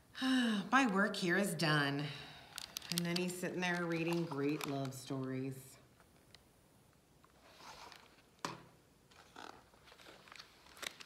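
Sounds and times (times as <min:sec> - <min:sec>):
faint paper rustling: 0:02.5 - 0:05.6, 0:09.1 - 0:11.0.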